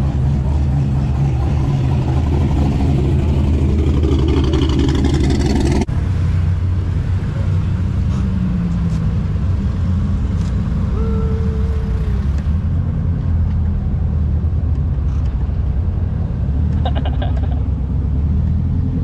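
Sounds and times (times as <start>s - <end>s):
cars idling: 0.0s - 12.7s, 14.4s - 18.2s
car engine rumbling past: 0.0s - 19.0s.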